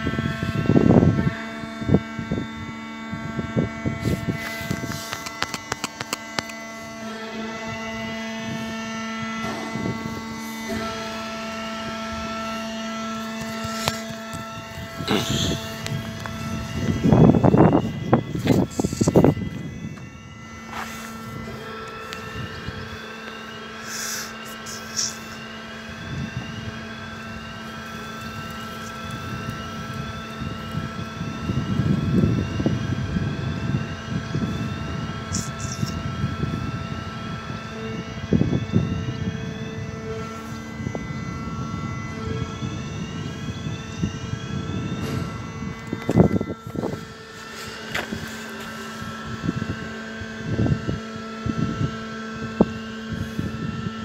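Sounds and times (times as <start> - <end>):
road barrier warning alarm: 0.0 - 54.0.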